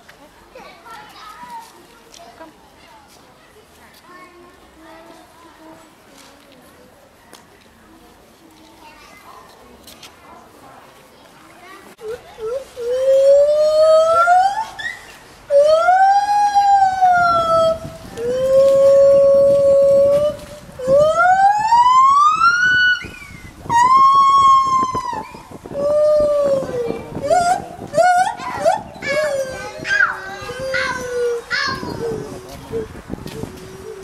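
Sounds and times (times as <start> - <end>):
gibbon whooping calls: 12.5 - 34.0.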